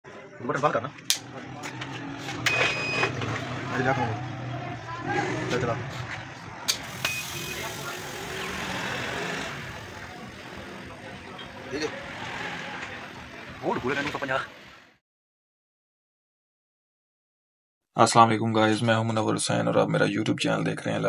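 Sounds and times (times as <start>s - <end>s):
indistinct voices: 0.1s - 14.9s.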